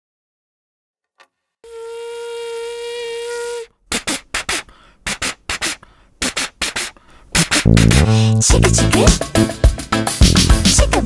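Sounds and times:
cartoon train whistle: 1.6s - 3.7s.

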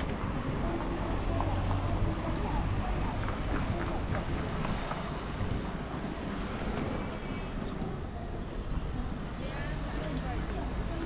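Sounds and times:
wind on microphone: 0.0s - 9.7s
faint voices of passers-by: 0.0s - 11.0s
passing traffic: 0.0s - 11.0s.

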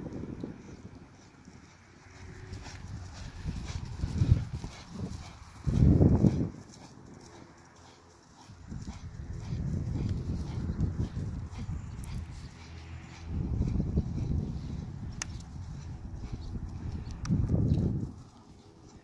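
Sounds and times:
hoofbeats cantering on grass: 0.0s - 19.0s.

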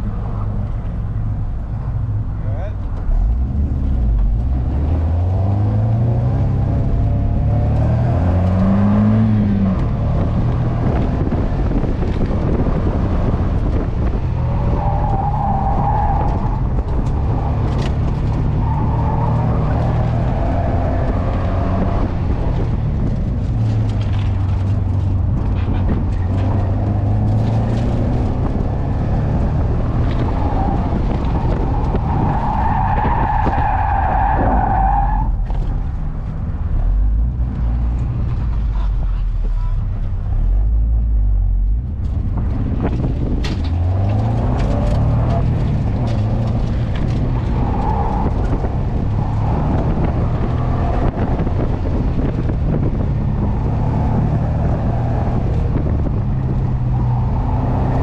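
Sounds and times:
car engine revving: 0.0s - 58.0s
wind and road noise: 0.0s - 58.0s
tires squealing: 2.4s - 36.2s, 42.3s - 58.0s.

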